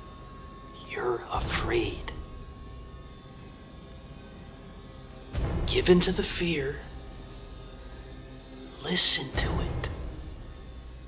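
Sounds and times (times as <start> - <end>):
low rumbling hum: 0.0 - 11.0.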